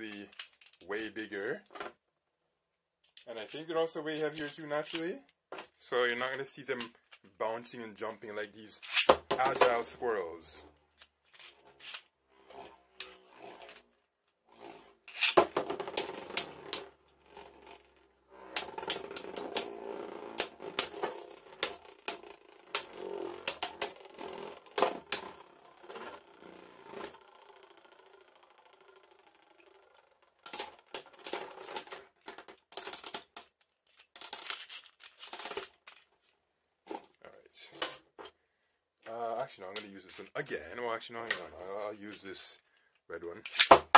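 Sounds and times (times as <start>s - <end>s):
spinning tops whirring and clashing: 11.3s - 13.8s, 14.5s - 33.4s.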